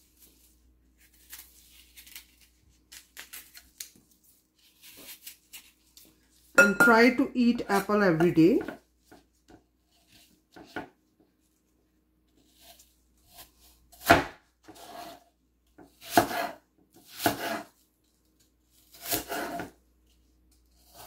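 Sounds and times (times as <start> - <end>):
knife cutting apple on wooden board: 12.4 - 17.8, 18.7 - 19.8, 20.6 - 21.0.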